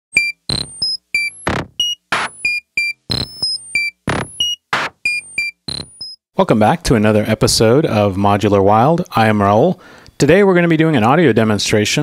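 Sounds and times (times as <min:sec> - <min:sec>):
synthesizer bleeps: 0:00.1 - 0:06.2.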